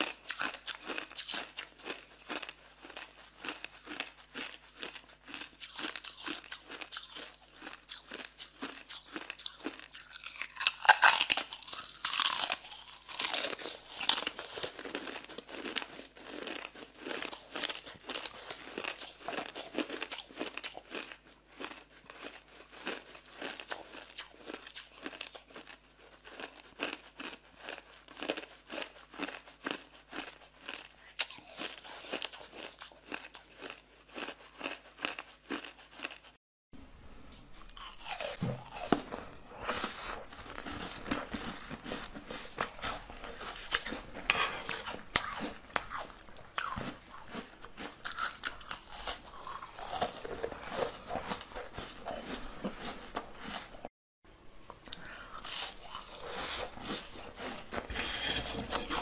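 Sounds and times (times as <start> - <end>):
ice crunching while chewed: 0.0 - 36.4, 37.6 - 53.9, 54.7 - 59.0.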